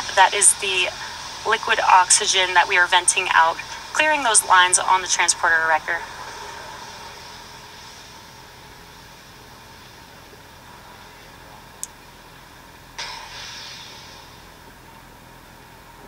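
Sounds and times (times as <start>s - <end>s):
sudden rush of hiss: 0.0s - 15.2s
faint hiss: 0.0s - 16.0s
low hum: 0.0s - 16.0s.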